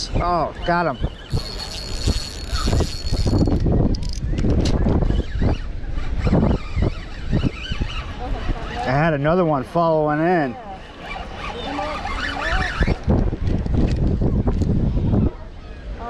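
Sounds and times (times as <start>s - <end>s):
wind rumble on microphone: 0.0s - 9.6s, 11.3s - 16.0s
fishing reel whirring: 1.1s - 9.1s, 10.2s - 13.2s.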